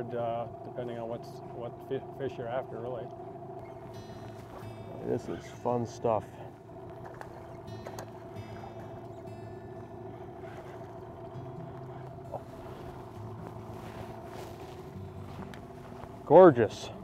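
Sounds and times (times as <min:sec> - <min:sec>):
outboard motor idling: 0:00.0 - 0:17.0.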